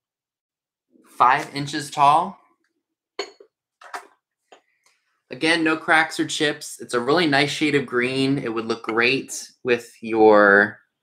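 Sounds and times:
glass dish knocks and clinks: 0:03.2 - 0:03.6, 0:08.4 - 0:09.2.

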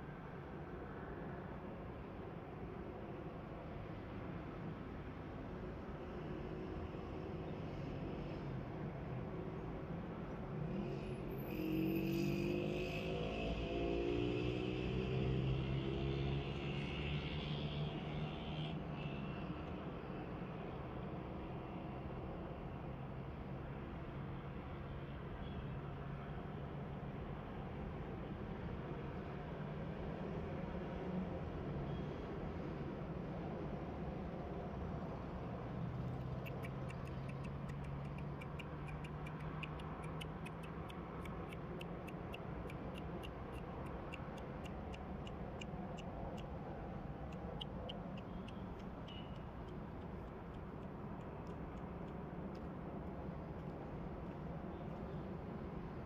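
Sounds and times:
faint regular ticking: 0:36.4 - 0:52.2.

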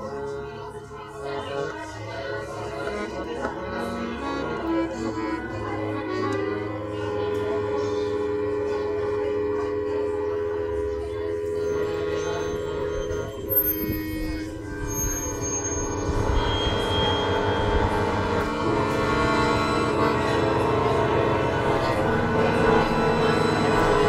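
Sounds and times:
accordion holding chords: 0:00.0 - 0:24.0
processed electronic sounds: 0:11.6 - 0:24.0.

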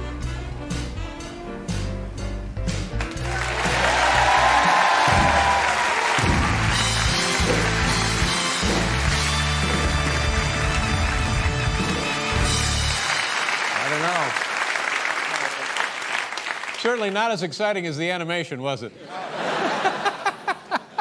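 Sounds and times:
audience applause and cheering: 0:03.0 - 0:17.1
music with bass line: 0:06.2 - 0:13.0.

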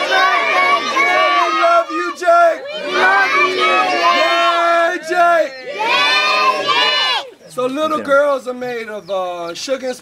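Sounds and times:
children shouting and cheering: 0:00.0 - 0:07.4.

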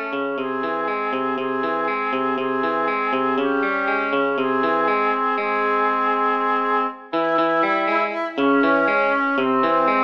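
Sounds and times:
electric guitar arpeggios: 0:00.0 - 0:10.0
held wind instrument notes: 0:01.2 - 0:10.0.

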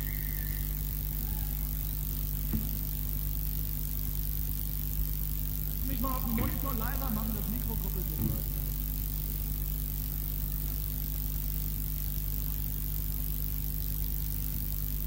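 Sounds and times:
low electrical hum: 0:00.0 - 0:15.0
even hiss: 0:05.4 - 0:10.5
person speaking: 0:05.8 - 0:09.0.

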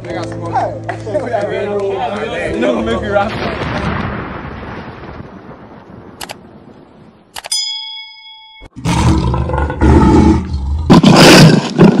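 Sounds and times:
bell ding: 0:07.4 - 0:08.8
lion roar sound effect: 0:08.8 - 0:12.0.

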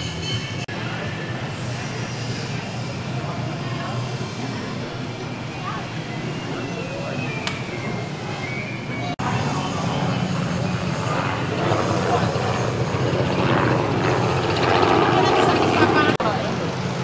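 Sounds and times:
people talking: 0:00.0 - 0:17.0.

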